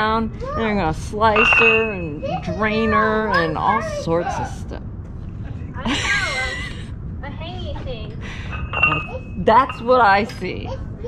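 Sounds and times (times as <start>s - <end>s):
steady high tone: 0.0s - 10.8s
low rumble on microphone: 0.0s - 11.0s
voices in conversation: 0.0s - 11.0s
woman laughing: 5.8s - 6.9s.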